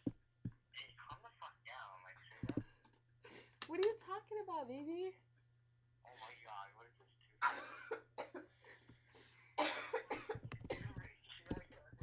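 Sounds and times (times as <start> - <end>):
person coughing: 9.6 - 11.0.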